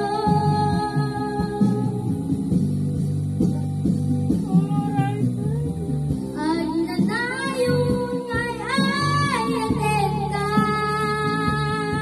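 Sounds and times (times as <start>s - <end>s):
girl singing into a microphone: 0.0s - 2.4s, 6.3s - 12.0s
karaoke backing track with guitar: 0.0s - 12.0s.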